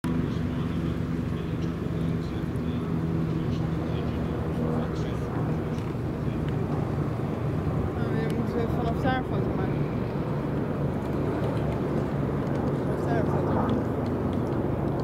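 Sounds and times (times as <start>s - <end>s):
steady low hum: 0.0s - 15.0s
faint voices: 0.1s - 15.0s.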